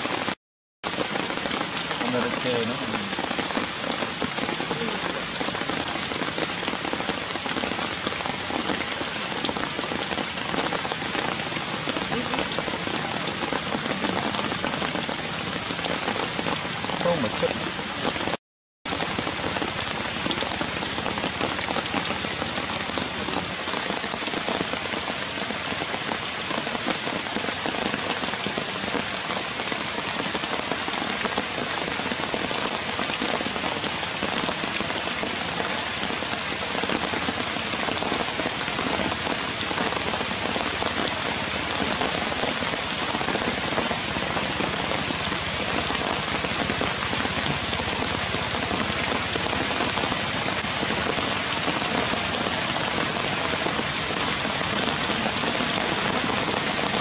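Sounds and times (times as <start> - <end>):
heavy rain falling: 0.0 - 57.0.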